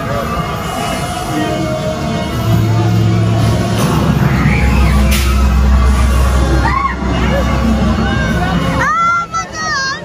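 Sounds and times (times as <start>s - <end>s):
low droning rumble: 1.1s - 9.4s.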